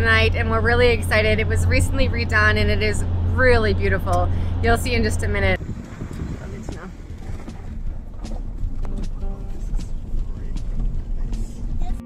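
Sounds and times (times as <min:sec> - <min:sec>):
car rolling on gravel rumble: 0:00.0 - 0:12.0.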